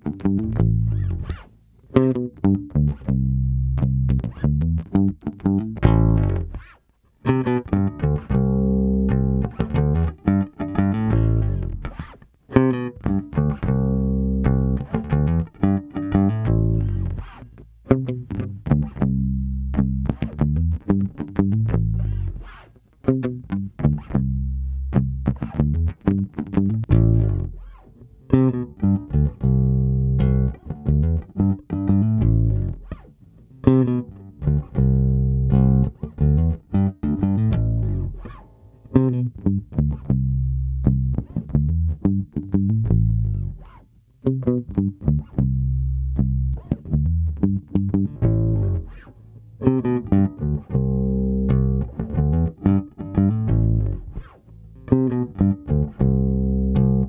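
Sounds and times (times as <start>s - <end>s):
electric bass picked line: 0.0s - 6.6s, 7.2s - 57.0s.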